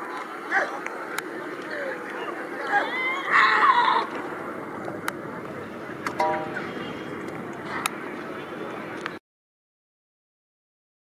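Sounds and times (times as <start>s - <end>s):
outdoor crowd murmur: 0.0s - 9.2s.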